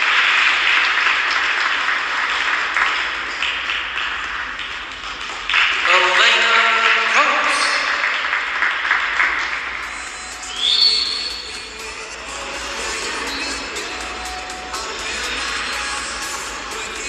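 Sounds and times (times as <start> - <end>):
audience applause: 0.0 - 9.9
music playing: 9.0 - 17.0.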